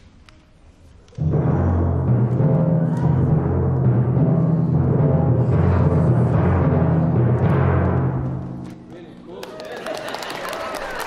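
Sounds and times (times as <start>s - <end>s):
timpani roll: 1.2s - 8.9s.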